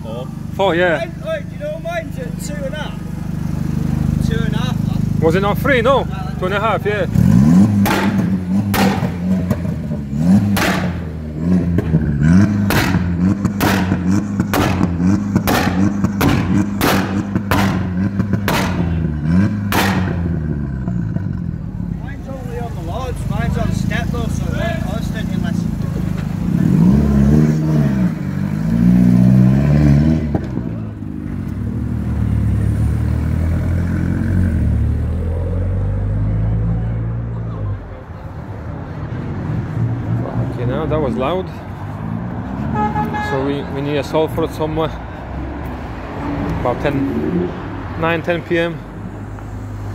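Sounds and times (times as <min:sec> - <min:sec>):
car engine at high revs: 0:00.4 - 0:21.9, 0:23.2 - 0:37.2, 0:45.4 - 0:49.9
sharp exhaust bangs: 0:07.0 - 0:21.4.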